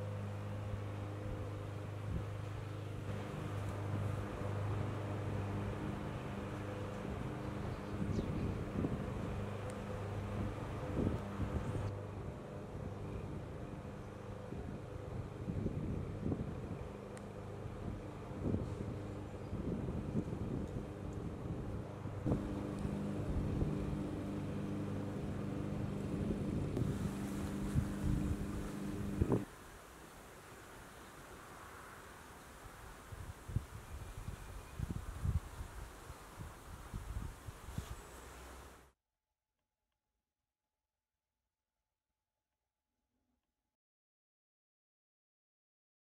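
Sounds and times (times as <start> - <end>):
low droning hum: 0.0 - 29.5
wind buffeting microphone: 3.1 - 11.9, 14.4 - 29.5, 33.1 - 38.0.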